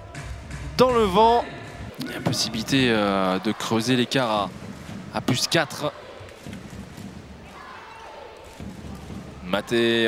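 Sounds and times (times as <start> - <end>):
murmur of crowd voices: 0.0 - 10.0
ball bouncing on court floor: 6.2 - 7.3, 8.4 - 9.4.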